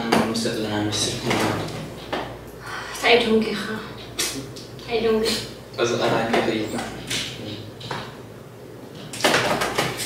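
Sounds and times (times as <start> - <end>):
two people talking: 0.0 - 7.8.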